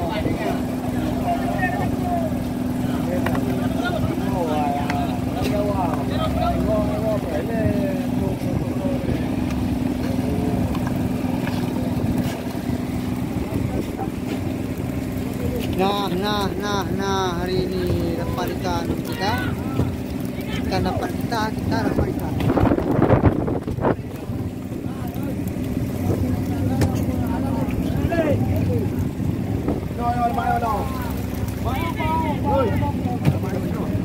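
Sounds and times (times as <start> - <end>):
boat engine humming: 0.0 - 34.0
voices chattering: 0.0 - 34.0.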